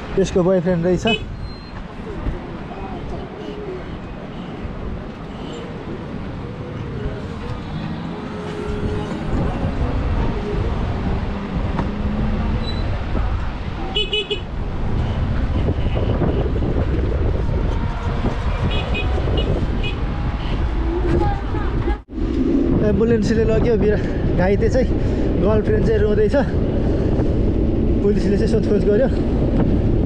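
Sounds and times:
wind rumbling on microphone: 0:01.2 - 0:30.0.

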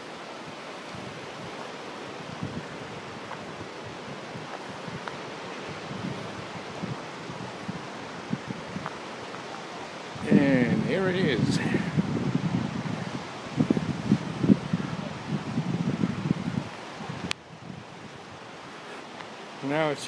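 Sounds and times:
distant ocean surf: 0:00.0 - 0:20.0
wind buffeting on microphone: 0:00.4 - 0:19.6
wind rushing: 0:00.9 - 0:09.1, 0:10.2 - 0:18.4
man speaking: 0:10.2 - 0:12.0, 0:19.6 - 0:20.0.

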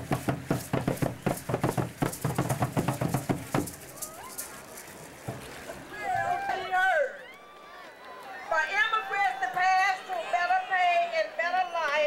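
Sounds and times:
drums beaten fast: 0:00.0 - 0:03.9.

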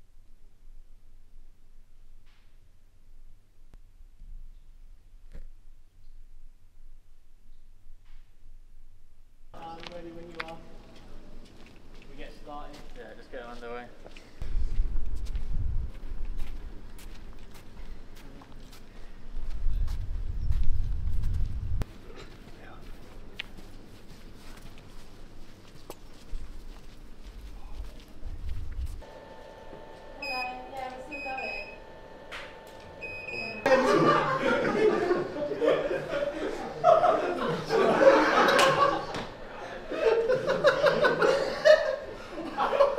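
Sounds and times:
faint footsteps: 0:09.6 - 0:33.3
wind rumbling on microphone: 0:14.4 - 0:16.8, 0:19.2 - 0:21.8, 0:27.4 - 0:29.0
electrical hum: 0:19.2 - 0:42.9
laughter: 0:33.7 - 0:42.9.

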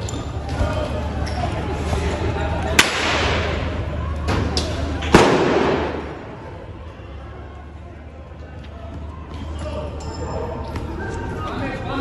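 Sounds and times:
loud explosive bang: 0:05.1 - 0:06.4.

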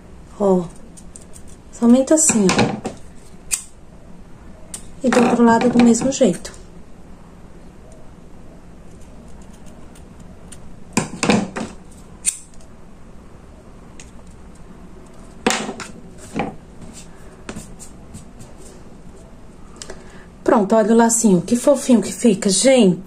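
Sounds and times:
scissors snipping: 0:03.2 - 0:03.7, 0:09.3 - 0:10.7, 0:11.8 - 0:12.7.

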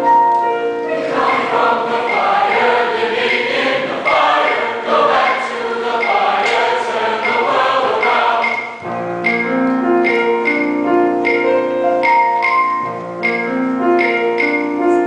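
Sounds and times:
piano playing: 0:00.0 - 0:15.0
mixed choir singing: 0:00.9 - 0:08.8.

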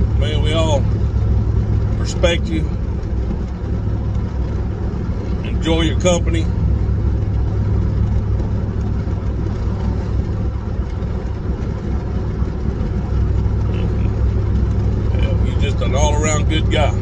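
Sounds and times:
car cabin engine and road noise: 0:00.0 - 0:17.0.

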